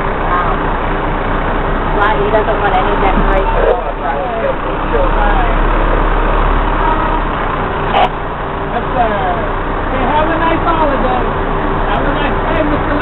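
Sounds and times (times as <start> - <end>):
truck engine hum: 0.0 - 13.0
voices: 0.0 - 13.0.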